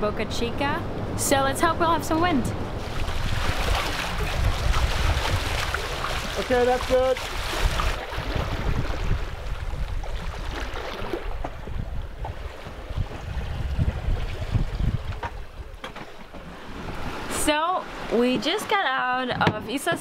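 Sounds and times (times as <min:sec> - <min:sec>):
wind buffeting microphone: 0:00.0 - 0:15.8
water rushing along hull: 0:00.0 - 0:20.0.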